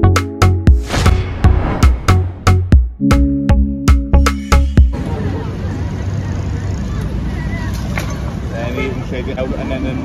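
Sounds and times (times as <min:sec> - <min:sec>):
people talking: 0:05.0 - 0:10.0.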